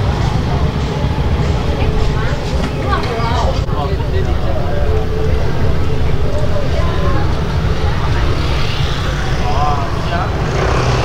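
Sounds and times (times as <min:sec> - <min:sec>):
street noise rumble: 0:00.0 - 0:11.0
voice-like calls: 0:01.0 - 0:11.0.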